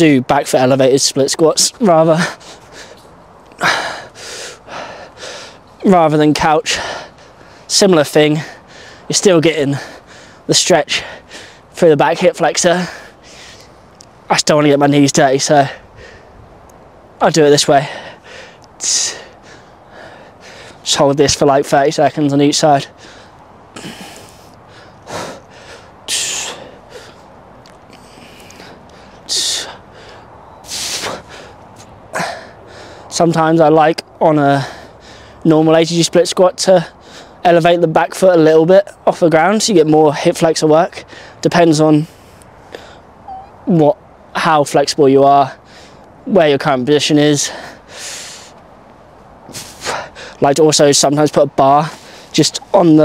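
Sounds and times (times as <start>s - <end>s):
man breathing out hard: 2.2s - 5.7s, 8.4s - 9.1s, 9.8s - 11.7s, 15.7s - 16.4s, 17.9s - 20.8s, 22.9s - 33.1s, 34.6s - 35.4s, 47.5s - 48.6s.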